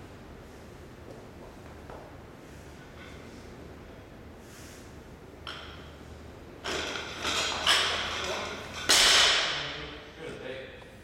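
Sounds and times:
barbell plates clattering and banging: 6.6s - 9.8s
metal bar and plates ringing: 6.6s - 9.8s.

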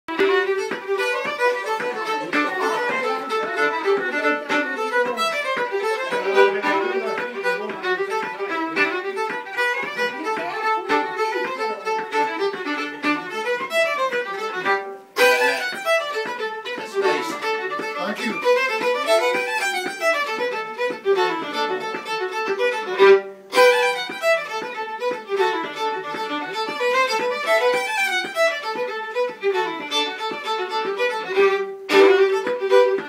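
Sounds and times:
fiddle playing a reel: 0.1s - 33.0s.

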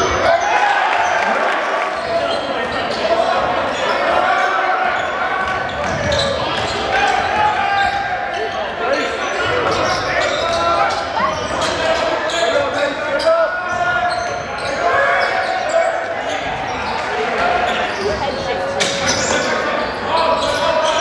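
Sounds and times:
voices of players and spectators: 0.0s - 21.0s.

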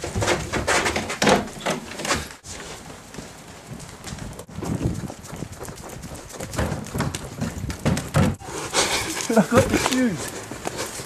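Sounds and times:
running footsteps on stone: 2.2s - 11.0s.

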